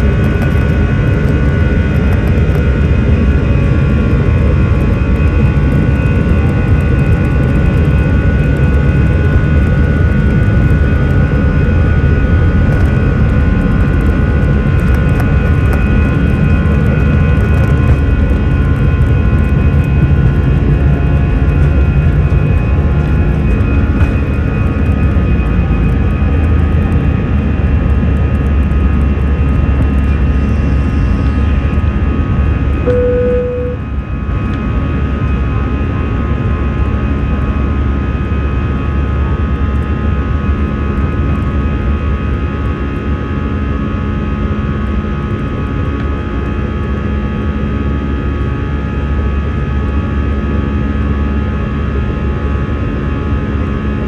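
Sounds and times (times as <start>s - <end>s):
jet engines at takeoff thrust: 0.0s - 54.0s.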